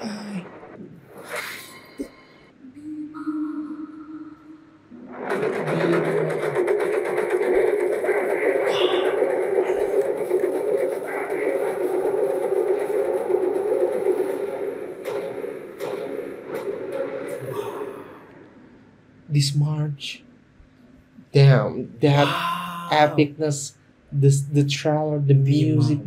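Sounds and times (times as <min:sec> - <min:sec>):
film trailer music: 0:04.8 - 0:17.4.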